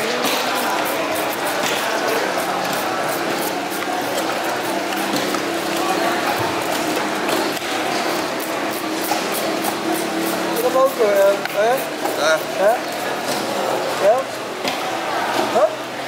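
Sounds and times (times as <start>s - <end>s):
busy market din: 0.0s - 16.0s
steady background hum: 0.0s - 16.0s
knife scraping fish: 0.4s - 4.9s, 8.1s - 12.6s.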